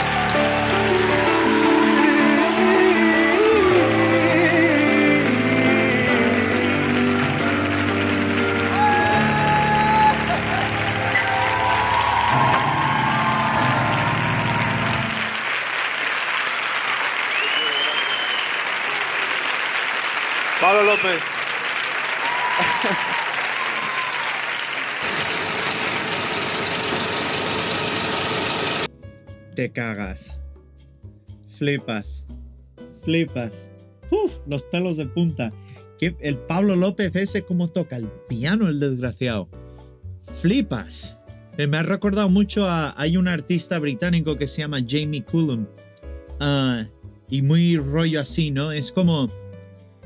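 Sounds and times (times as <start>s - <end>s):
piano and voice ballad: 0.0s - 15.4s
audience applauding: 0.0s - 28.9s.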